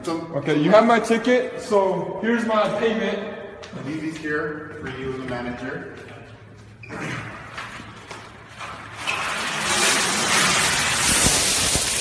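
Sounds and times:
coins pouring onto counter: 10.6 - 12.0.

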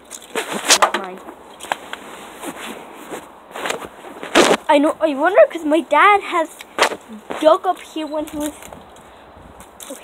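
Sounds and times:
clothing brushing: 1.8 - 4.7.

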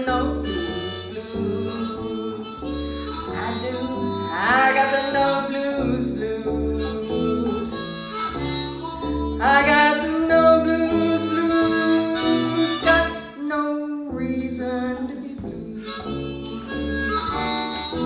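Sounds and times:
blues harmonica: 0.0 - 13.6, 14.9 - 18.0
acoustic guitar accompaniment: 0.0 - 18.0.

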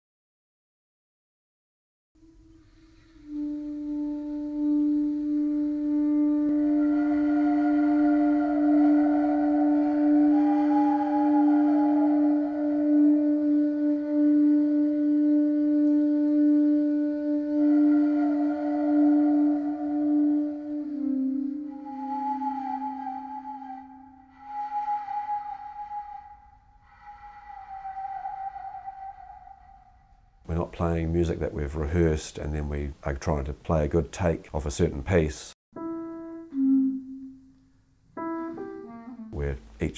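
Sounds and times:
low saxophone tone: 2.2 - 30.7, 35.8 - 37.6, 38.2 - 39.9
breathy flute tones: 2.2 - 32.8, 35.8 - 39.9.

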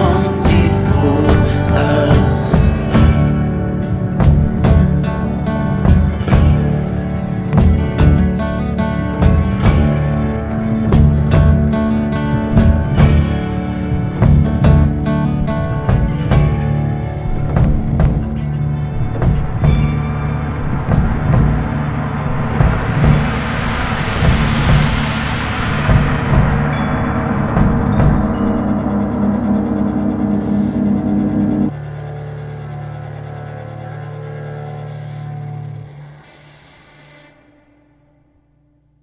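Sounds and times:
held chord ringing: 0.0 - 36.0
rock band playing: 0.0 - 37.1
gong rolled with mallets: 9.2 - 33.6.

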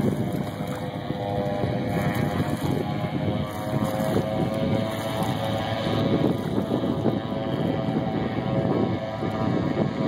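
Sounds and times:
choppy water: 0.0 - 10.0
engine drone: 0.0 - 10.0
wind buffeting microphone: 0.0 - 10.0.

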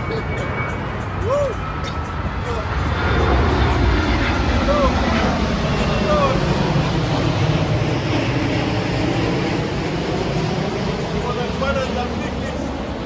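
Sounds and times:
low rumble: 0.0 - 12.7.

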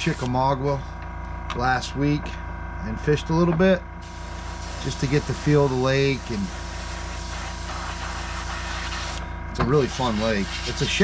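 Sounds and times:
motor hum: 0.0 - 11.0
airbrush air hiss: 4.0 - 9.2, 9.8 - 11.0.

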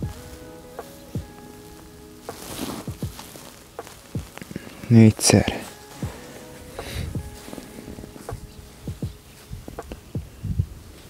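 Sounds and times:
clothing rustle: 0.0 - 10.2
faint background music: 0.0 - 11.0
soft thumps: 2.3 - 4.8, 5.5 - 10.8.

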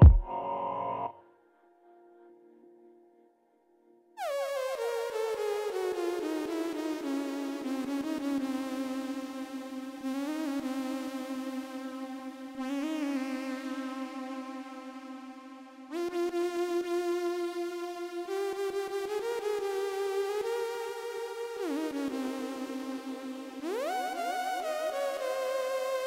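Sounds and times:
synthesizer lead note: 0.0 - 1.2.

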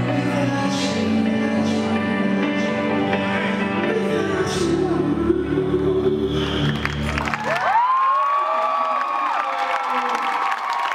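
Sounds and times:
audience cheering and applauding: 6.6 - 10.9
long high cheer: 7.1 - 10.9.

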